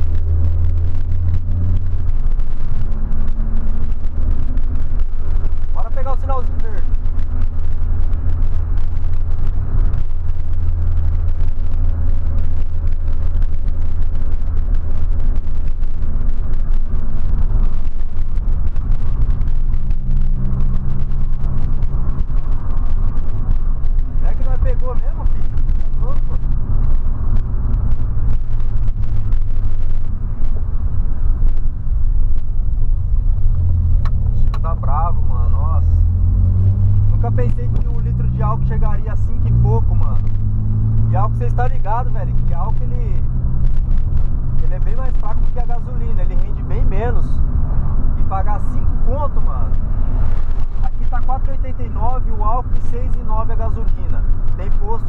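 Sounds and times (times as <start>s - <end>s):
car engine hum: 0.0s - 55.0s
road noise: 0.0s - 55.0s.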